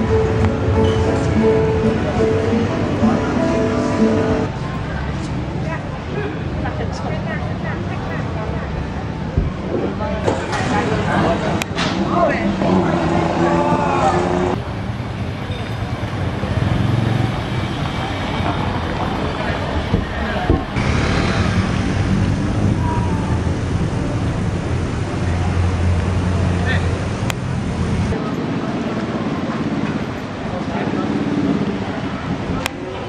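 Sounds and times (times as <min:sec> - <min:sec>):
people's voices: 0:00.0 - 0:14.8, 0:15.4 - 0:33.0
motor traffic on road: 0:00.0 - 0:33.0.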